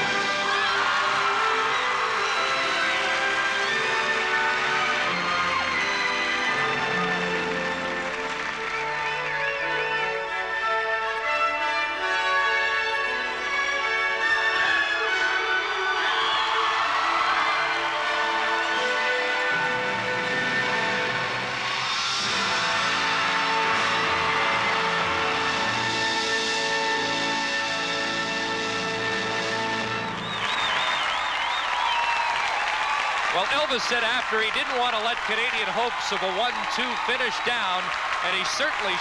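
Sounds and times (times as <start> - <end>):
crowd applause and cheering: 0.0 - 39.0
figure skating music: 0.0 - 39.0.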